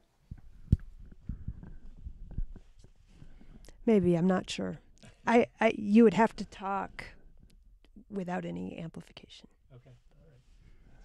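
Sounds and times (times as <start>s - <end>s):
soft low thumps: 0.3s - 4.8s.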